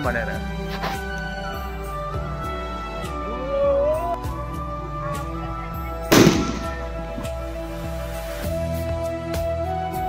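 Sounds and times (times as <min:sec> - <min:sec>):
background music: 0:00.0 - 0:10.0
firecracker bang: 0:06.1 - 0:07.0.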